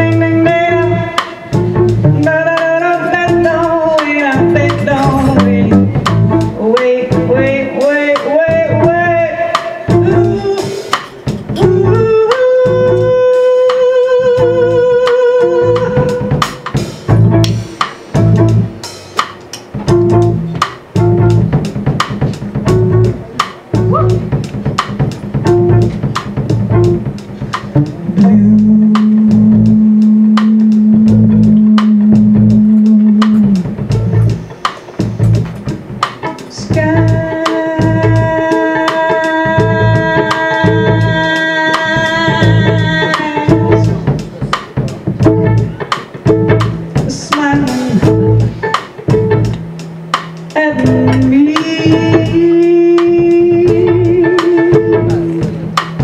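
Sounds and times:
upright double bass: 0.0 - 13.3, 14.2 - 19.0, 19.8 - 56.0
woman singing: 0.0 - 16.7, 27.9 - 33.6, 36.2 - 44.2, 47.0 - 48.4, 50.5 - 55.5
drum kit: 0.0 - 56.0
violin: 50.4 - 56.0.

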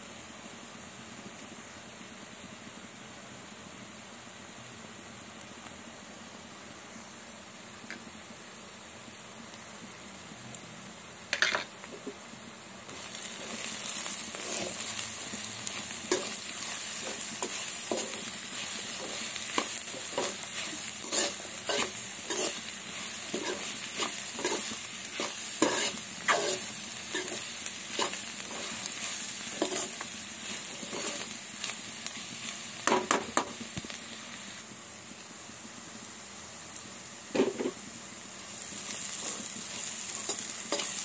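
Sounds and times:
food sizzling in oil: 0.0 - 41.0
spatula scraping a pan: 12.9 - 31.8, 39.1 - 41.0.

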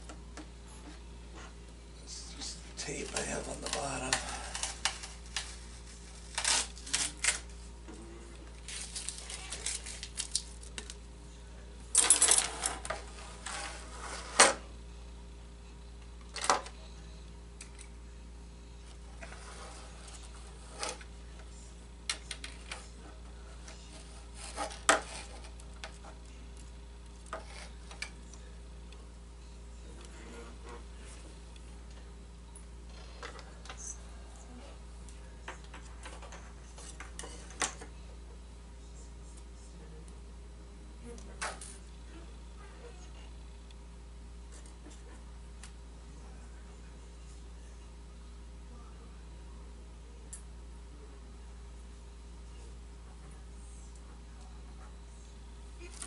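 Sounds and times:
low electrical hum: 0.0 - 56.0.

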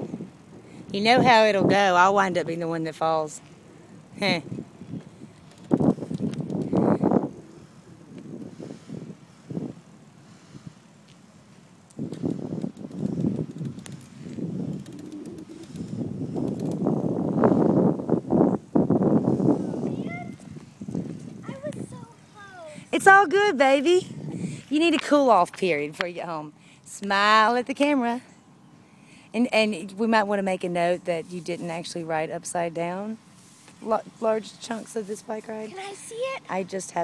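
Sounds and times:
wind gusts on microphone: 0.0 - 10.9, 11.9 - 25.8.

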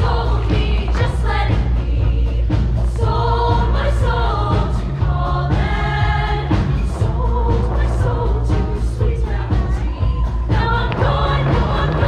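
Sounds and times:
choir singing: 0.0 - 12.0
instrumental backing with heavy bass: 0.0 - 12.0.

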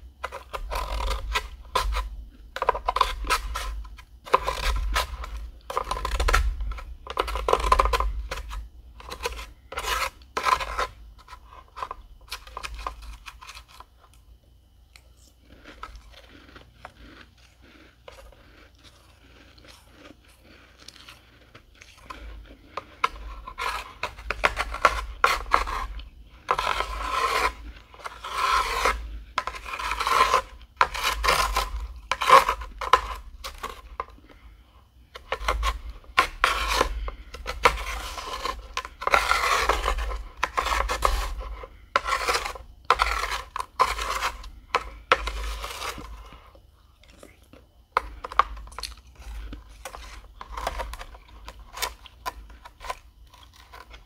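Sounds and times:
metal spoon scraping frost: 0.0 - 13.9, 15.2 - 46.6, 47.9 - 54.0.

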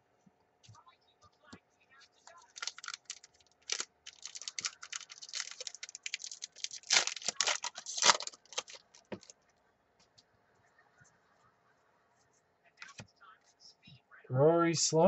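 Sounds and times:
foil wrapper crinkling and tearing: 2.3 - 9.3.

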